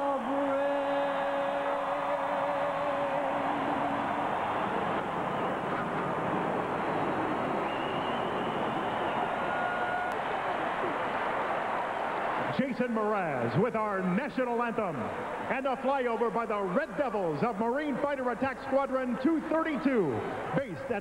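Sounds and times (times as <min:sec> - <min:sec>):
crowd cheering: 0:00.0 - 0:16.8
crowd whistling: 0:00.2 - 0:12.7
jet roar: 0:04.1 - 0:09.4.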